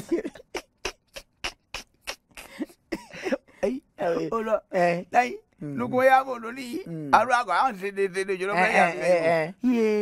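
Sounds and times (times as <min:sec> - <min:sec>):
men laughing: 0:00.0 - 0:04.4.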